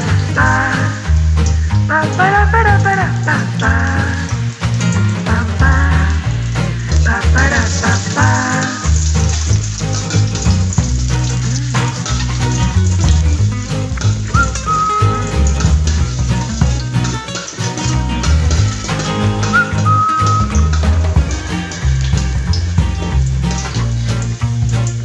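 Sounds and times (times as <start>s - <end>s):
background music: 0.0s - 25.0s
oil sizzling in a wok: 0.0s - 25.0s.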